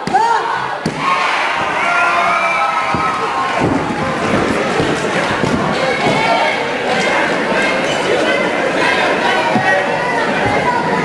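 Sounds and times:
crowd shouting and cheering: 0.0 - 11.0
thud: 0.8 - 1.8, 2.8 - 6.2.

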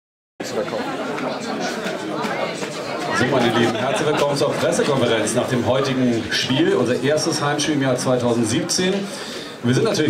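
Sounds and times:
crowd chatter in a hall: 0.4 - 10.0.

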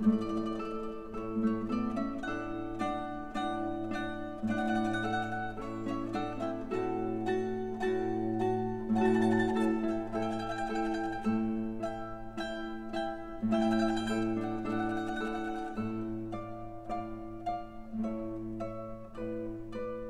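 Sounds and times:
mandolin trio playing: 0.0 - 20.0.

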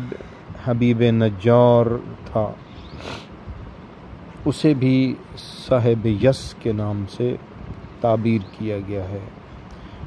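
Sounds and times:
man narrating: 0.0 - 2.6, 4.4 - 7.4, 8.0 - 9.4
breathy hiss: 2.7 - 3.4.

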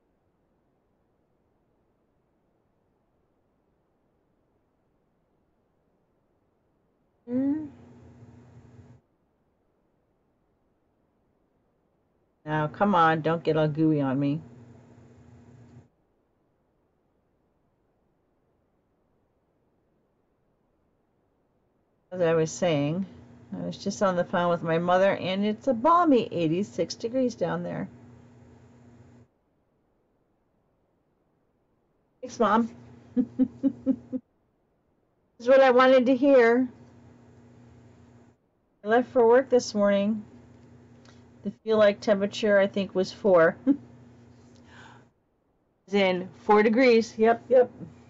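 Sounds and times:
woman humming low: 7.3 - 7.9
steady low hum: 7.3 - 9.4, 12.5 - 16.0, 21.9 - 29.4, 32.2 - 34.2, 35.4 - 48.0.

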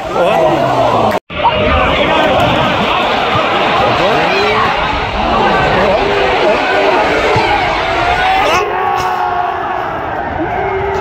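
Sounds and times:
long held crowd shouts: 0.0 - 11.0
stadium crowd cheering: 0.0 - 11.0.

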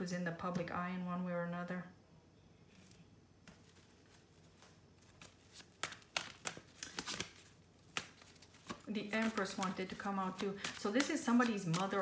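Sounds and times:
cards being shuffled by hand: 2.7 - 12.0.

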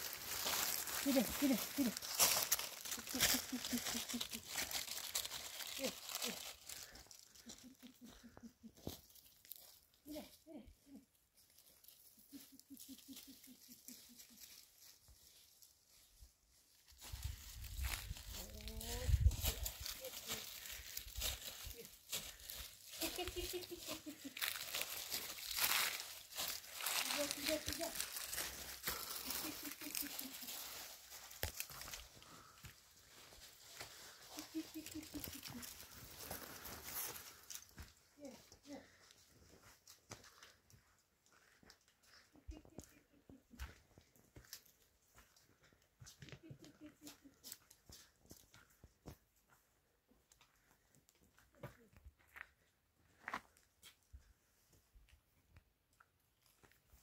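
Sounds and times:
footsteps crunching over leaves: 0.0 - 10.0, 11.4 - 45.8.

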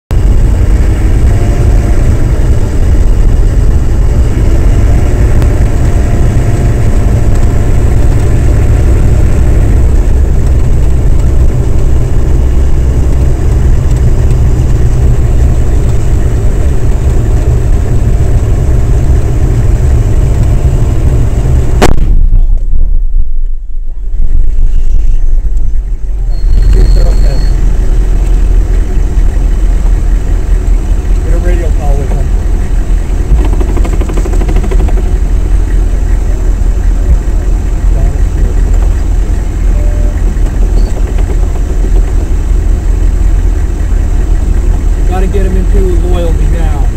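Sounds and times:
heavy low rumble: 0.0 - 46.9
vehicle engine running: 0.0 - 46.9
bomb explosion: 21.0 - 25.5.

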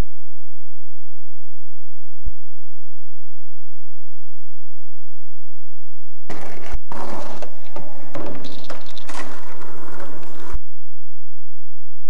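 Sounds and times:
sharp knock: 6.3 - 10.6
skateboard rolling on concrete: 6.3 - 10.6.

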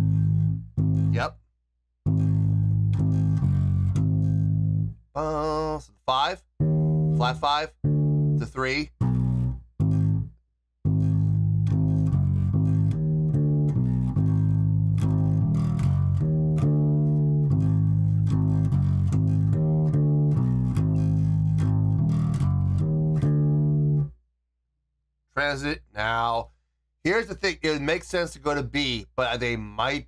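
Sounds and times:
guitar riff picked: 0.0 - 1.3, 2.1 - 5.7, 6.6 - 10.3, 10.9 - 24.1.

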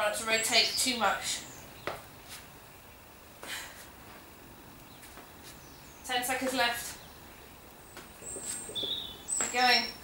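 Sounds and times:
bird chirping: 4.8 - 10.0.

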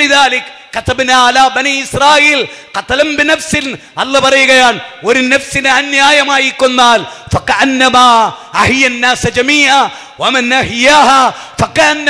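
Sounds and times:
man speaking into microphone: 0.0 - 12.0.

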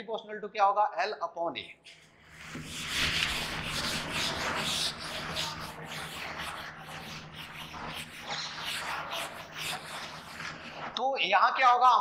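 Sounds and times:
duster rubbing on whiteboard: 1.9 - 11.0.

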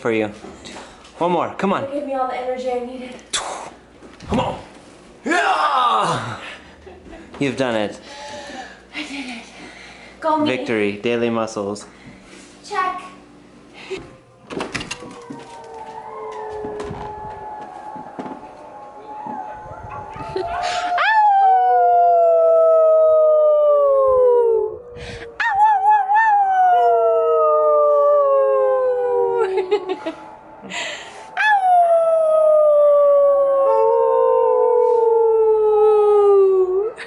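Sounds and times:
dog howling: 14.2 - 37.0.

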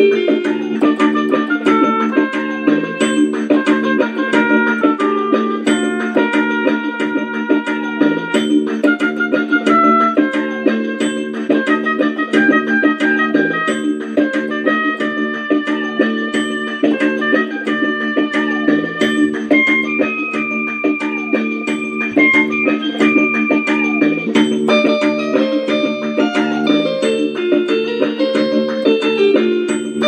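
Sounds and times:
drum machine beat: 0.0 - 30.0
electronic keyboard melody: 0.0 - 30.0.

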